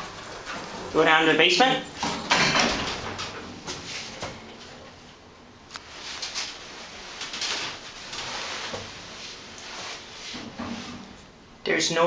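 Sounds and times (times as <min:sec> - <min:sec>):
elevator mechanical rushing: 0:00.0 - 0:04.9.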